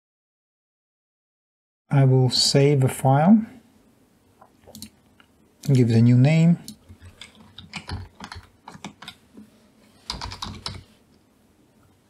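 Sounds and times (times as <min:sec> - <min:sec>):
typing on computer keyboard: 0:06.7 - 0:09.2, 0:10.1 - 0:10.9.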